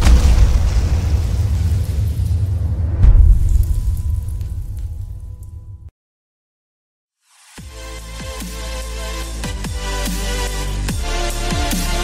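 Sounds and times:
deep low rumble: 0.0 - 5.9
heavy boom: 0.0 - 5.9.

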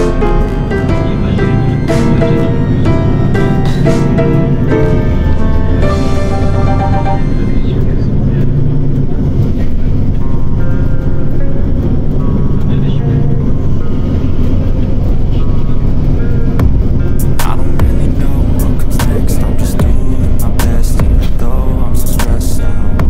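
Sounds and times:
song with steady bass line: 0.0 - 23.0.

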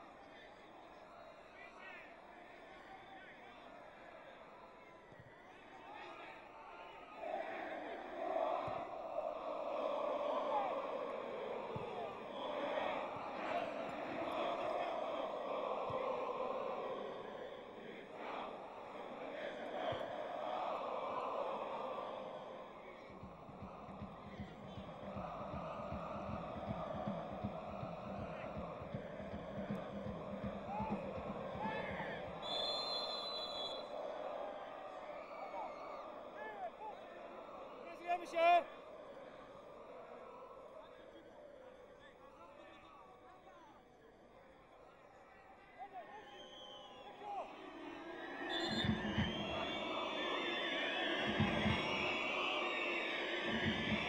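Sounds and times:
crowd singing and chanting: 0.0 - 42.2, 45.9 - 54.0
fast rhythmic low pounding: 23.1 - 32.4
short high whistle: 32.4 - 33.9.

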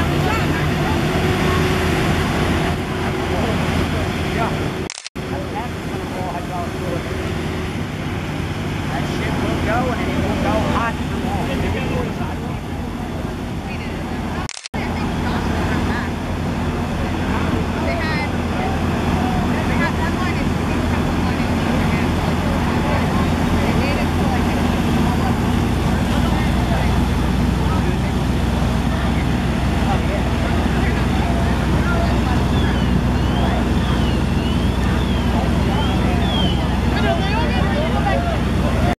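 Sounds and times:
diesel engine running: 0.0 - 38.9
firefighters' voices: 0.0 - 38.9.

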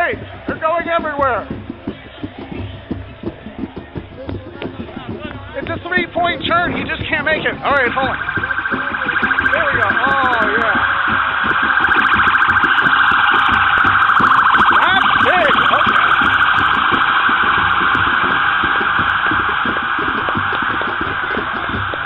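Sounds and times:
police siren yelping: 7.2 - 22.0.

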